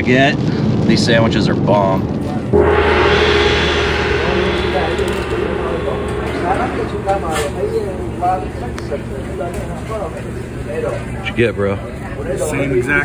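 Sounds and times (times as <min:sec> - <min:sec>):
steady low hum: 0:02.5 - 0:10.8
rush of noise: 0:02.6 - 0:09.5.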